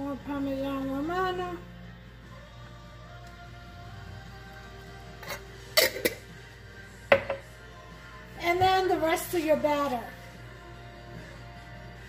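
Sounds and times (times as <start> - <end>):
woman speaking: 0.0 - 1.7, 8.4 - 10.2
faint background music: 0.0 - 12.0.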